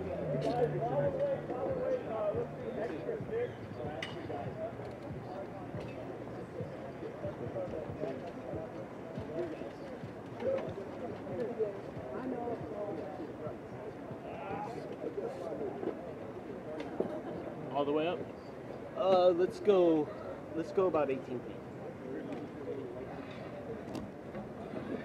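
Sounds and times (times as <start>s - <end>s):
indistinct voices talking: 0.0s - 16.7s.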